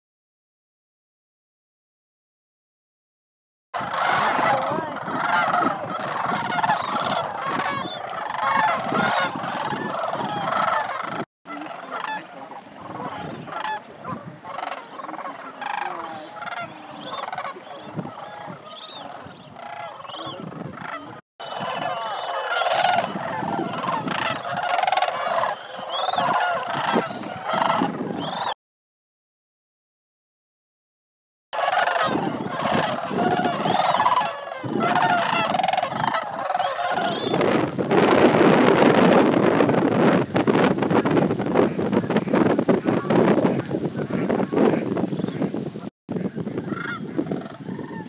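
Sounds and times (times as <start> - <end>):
cranes calling: 3.8 - 28.6, 31.6 - 37.8, 46.3 - 48.0.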